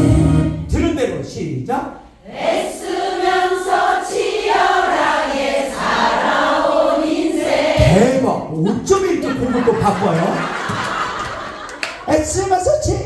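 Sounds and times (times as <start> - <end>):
backing track music: 0.0 - 0.7
women singing in unison: 2.3 - 7.8.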